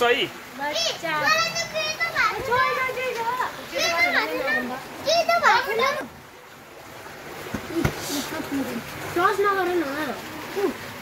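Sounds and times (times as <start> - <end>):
children shouting and squealing: 0.9 - 6.1.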